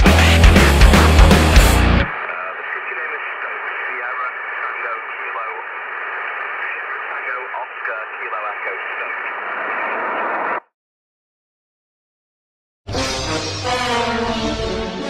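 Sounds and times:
voice through old radio: 2.1 - 9.5.

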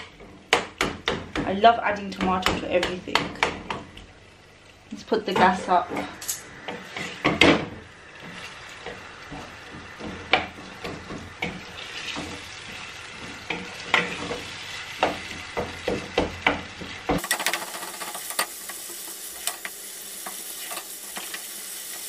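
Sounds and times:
wooden spoon knocking and scraping pan: 0.0 - 4.0, 5.3 - 22.0
food sizzling: 3.6 - 22.0.

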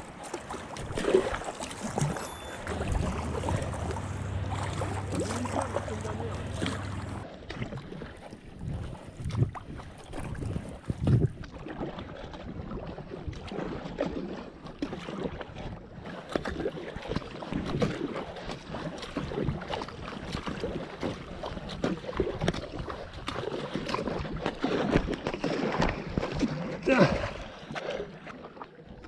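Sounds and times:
kayak paddle splashing: 0.0 - 29.0
water running along hull: 0.0 - 29.0
wind buffeting microphone: 1.8 - 7.2.

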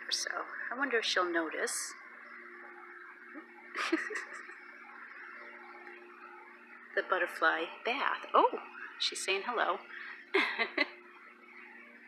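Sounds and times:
faint background hum: 0.0 - 12.0
woman laughing: 3.8 - 4.7, 10.4 - 11.0.

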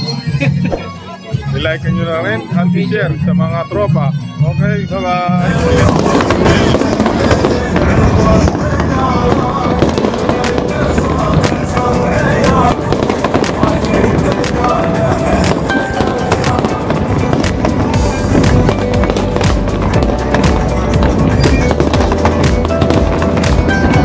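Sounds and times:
music playing: 0.0 - 24.0
fireworks bangs and crackles: 5.1 - 24.0.

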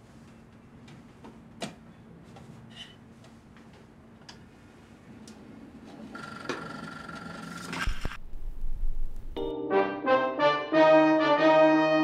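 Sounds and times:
record player hiss: 7.6 - 9.4.

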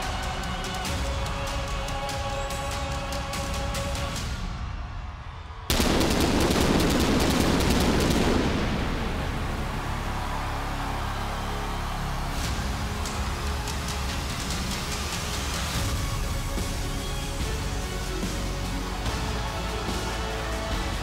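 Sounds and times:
entrance music in arena: 0.0 - 21.0
sudden loud blast: 5.7 - 11.2.

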